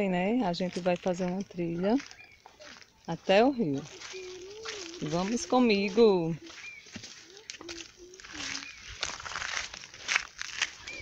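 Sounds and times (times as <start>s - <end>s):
dry twigs and leaves rustling: 0.0s - 11.0s
footsteps crunching on stony dirt: 0.0s - 11.0s.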